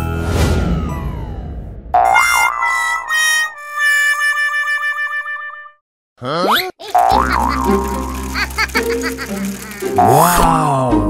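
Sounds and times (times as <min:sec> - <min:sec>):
warbling wavering tone: 0:02.0 - 0:04.0.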